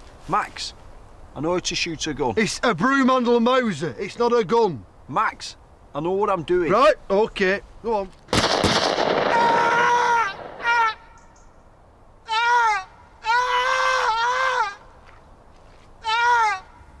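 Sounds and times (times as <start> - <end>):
high-pitched voice wailing: 12.3 - 14.8, 16.0 - 16.8.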